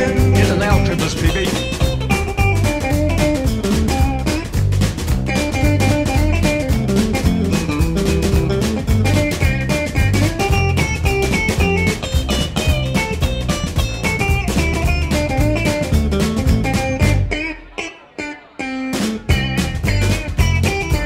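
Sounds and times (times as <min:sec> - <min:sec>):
drum kit: 0:00.0 - 0:17.4, 0:18.9 - 0:21.0
upright bass: 0:00.0 - 0:17.7, 0:18.9 - 0:21.0
electric guitar: 0:00.0 - 0:21.0.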